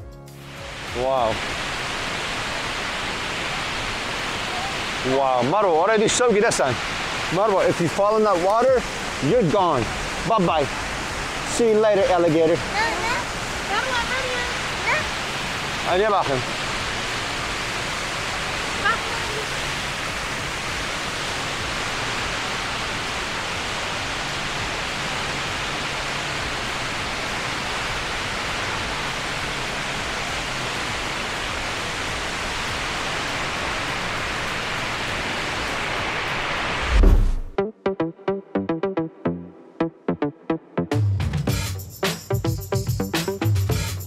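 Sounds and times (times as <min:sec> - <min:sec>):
waterfall rushing: 0:00.4 - 0:37.4.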